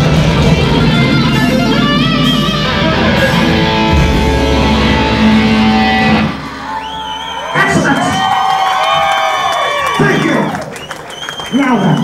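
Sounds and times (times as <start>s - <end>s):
live heavy metal band: 0.0s - 7.1s
crowd cheering and whooping: 4.3s - 12.0s.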